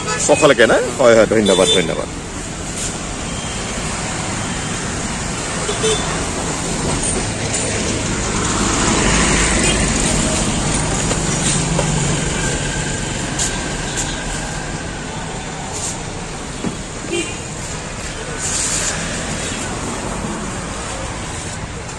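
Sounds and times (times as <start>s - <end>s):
road traffic noise: 0.0s - 21.9s
vehicle engine humming: 0.0s - 21.9s.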